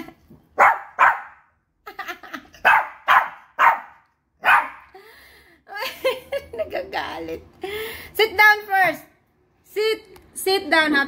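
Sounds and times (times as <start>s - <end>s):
small dog barking: 0.6s - 1.4s, 2.6s - 4.8s.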